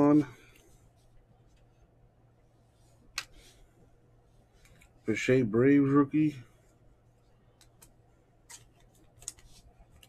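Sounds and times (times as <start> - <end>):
trading cards shuffling clicks: 7.5 - 10.0.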